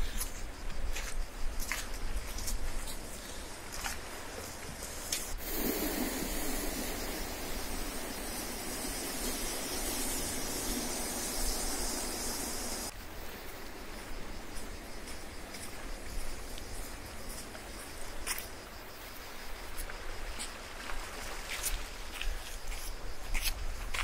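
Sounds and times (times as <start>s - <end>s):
footsteps on dirt path: 0.0s - 7.0s, 13.4s - 24.0s
wind: 0.0s - 24.0s
surf washing against rocks: 5.4s - 12.9s.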